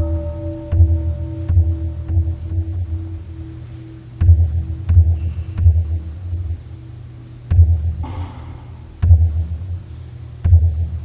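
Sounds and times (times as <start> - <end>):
large bell humming: 0.0 - 8.0
deep temple drum booms: 4.2 - 6.2, 7.5 - 9.8.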